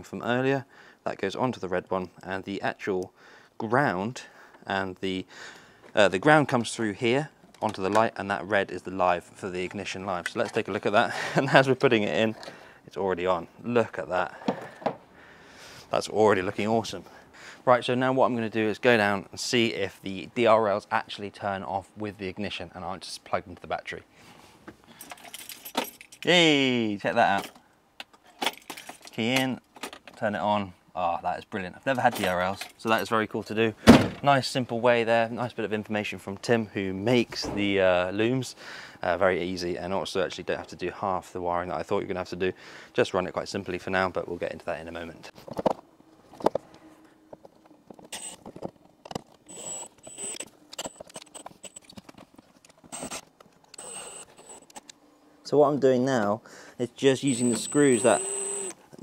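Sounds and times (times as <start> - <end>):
clicks and knocks of parts handled: 24.7 - 26.3, 27.3 - 30.2, 45.3 - 55.0
keys jingling: 25.0 - 26.3, 28.3 - 29.2
cordless drill whining: 48.1 - 48.4, 49.5 - 51.8, 52.9 - 54.8, 57.2 - 58.8.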